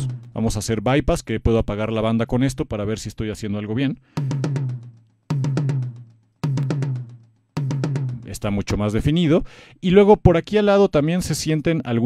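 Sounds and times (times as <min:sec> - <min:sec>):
tom drum strokes: 0:00.0 - 0:00.4, 0:04.2 - 0:08.6.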